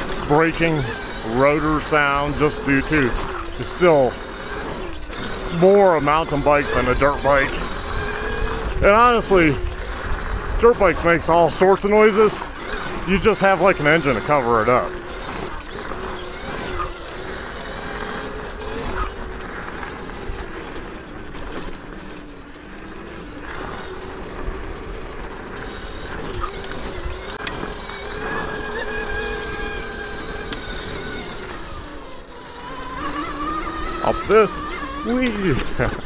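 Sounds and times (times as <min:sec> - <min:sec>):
electric motor whine: 0:00.0 - 0:36.0
tyres on dirt: 0:00.0 - 0:36.0
sharp clicks: 0:25.7 - 0:29.8.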